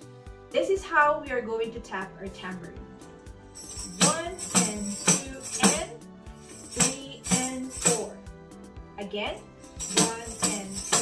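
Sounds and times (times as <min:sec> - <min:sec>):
tambourine taps with jingle: 0:03.5 - 0:08.2, 0:09.4 - 0:11.0.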